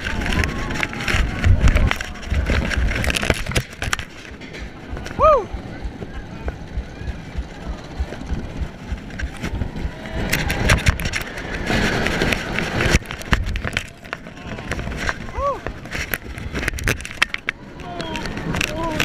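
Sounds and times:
roller coaster rattling on track: 0.0s - 19.0s
wind buffeting microphone: 0.0s - 19.0s.

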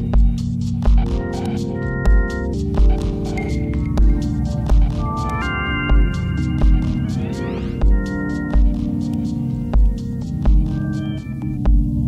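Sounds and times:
deep kick drum thumps: 0.0s - 1.2s, 2.1s - 3.2s, 3.8s - 5.0s, 7.8s - 9.0s, 9.7s - 10.8s, 11.6s - 12.0s
ambient techno: 0.0s - 12.0s
rising synth sweep: 3.1s - 9.2s.

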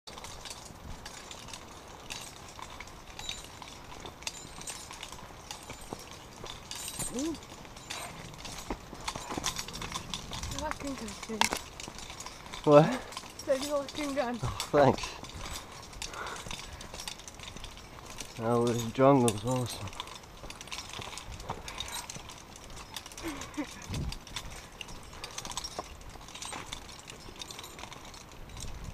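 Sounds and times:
footsteps on dry leaves and stones: 0.1s - 28.9s.

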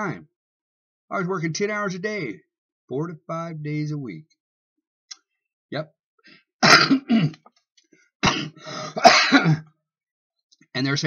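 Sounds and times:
man coughing: 6.6s - 7.4s, 8.2s - 9.7s.

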